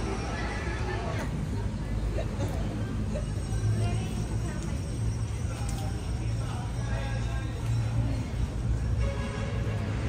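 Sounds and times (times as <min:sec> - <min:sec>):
low traffic rumble: 0:00.0 - 0:10.0
people's voices: 0:00.0 - 0:10.0.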